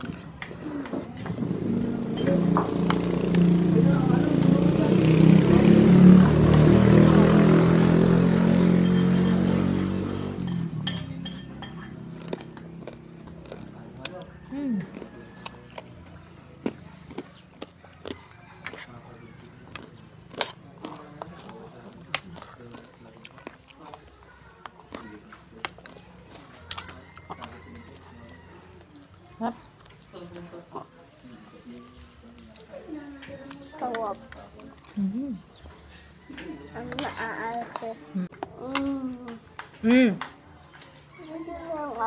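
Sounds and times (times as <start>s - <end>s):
vehicle engine passing by: 1.2s - 17.6s
fork and spoon clinking on plate: 8.8s - 12.0s.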